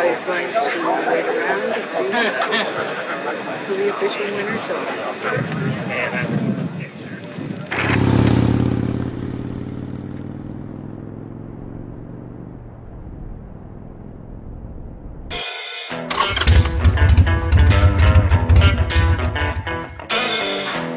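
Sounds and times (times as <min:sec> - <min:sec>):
motorcycle engine passing: 0:07.2 - 0:14.3
music with a strong beat: 0:15.3 - 0:20.9.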